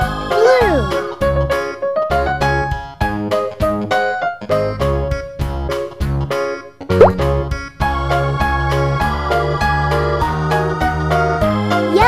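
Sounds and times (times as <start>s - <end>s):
rising cartoon pop: 7.0s - 7.4s.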